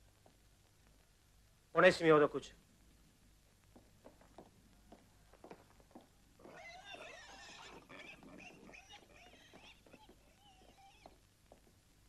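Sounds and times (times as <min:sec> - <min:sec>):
faint high-pitched animal cries: 0:06.4 - 0:11.2.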